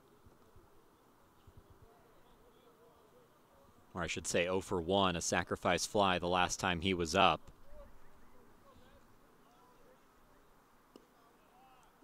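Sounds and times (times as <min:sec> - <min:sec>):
murmur of distant voices: 0:00.0 - 0:04.7, 0:07.0 - 0:12.0
commentator speaking: 0:04.0 - 0:07.4.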